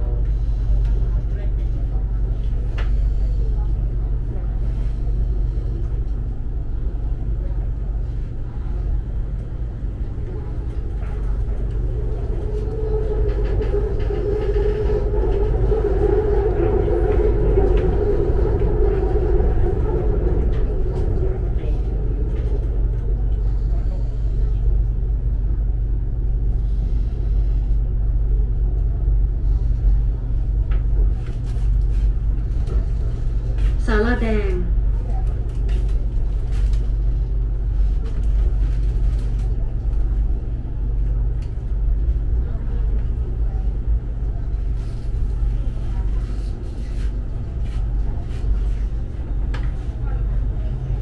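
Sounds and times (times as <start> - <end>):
train carriage rumble: 0.0 - 51.0
train hum: 0.0 - 51.0.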